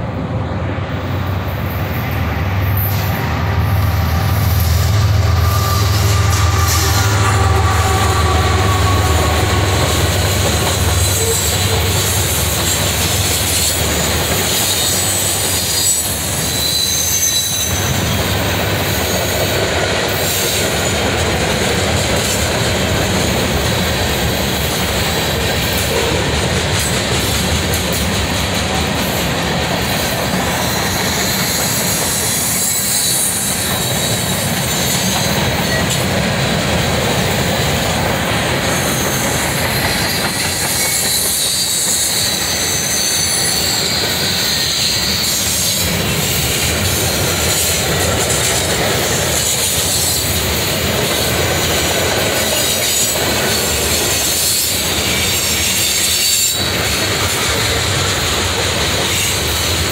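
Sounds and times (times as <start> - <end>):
locomotive engine drone: 0.0 - 14.7
train wheels rumbling on rails: 0.0 - 59.9
high-pitched wheel squeals: 2.7 - 12.8, 14.4 - 18.2, 30.6 - 36.0, 38.6 - 46.5.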